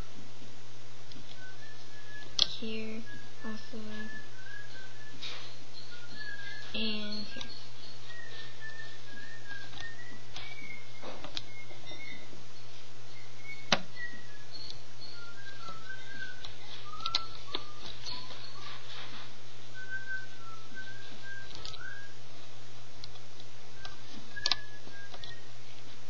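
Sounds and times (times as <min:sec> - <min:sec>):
steady low hum: 0:00.0 - 0:26.0
wavering whistled notes: 0:01.3 - 0:22.2, 0:23.7 - 0:25.8
sharp clicks: 0:23.0 - 0:25.4.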